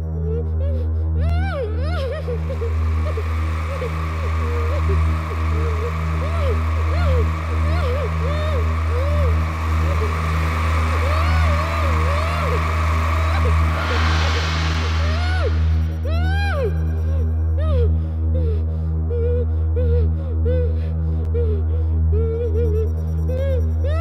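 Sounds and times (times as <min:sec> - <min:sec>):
wavering voice-like calls: 0:00.0 - 0:17.9
heavy low pulsing drone: 0:00.0 - 0:24.0
hissing swell: 0:02.4 - 0:17.5.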